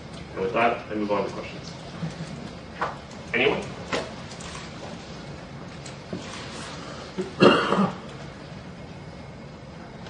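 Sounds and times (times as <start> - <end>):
person coughing: 7.2 - 8.1.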